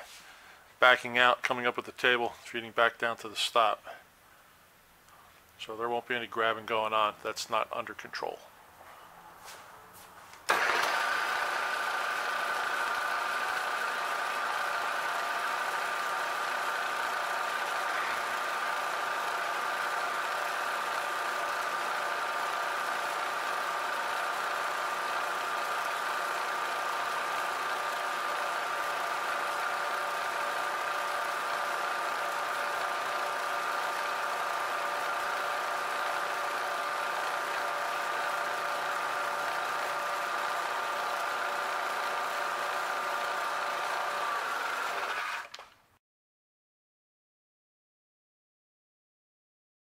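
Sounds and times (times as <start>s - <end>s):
end mill cutting brass: 10.5s - 45.5s
milling machine spindle whining: 10.5s - 45.6s.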